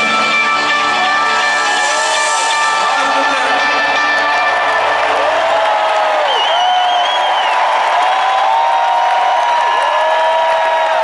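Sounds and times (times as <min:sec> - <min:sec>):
crowd cheering and whooping: 0:00.6 - 0:11.0
shrill wavering whistle: 0:06.1 - 0:07.7.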